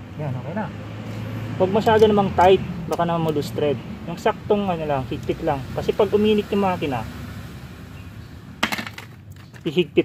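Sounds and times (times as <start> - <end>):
metal tool clinking on bolts: 1.7 - 3.5.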